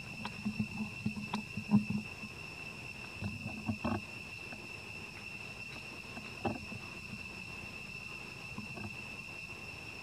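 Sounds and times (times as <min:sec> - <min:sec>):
high-pitched insect drone: 0:00.0 - 0:10.0
rustles: 0:00.0 - 0:10.0.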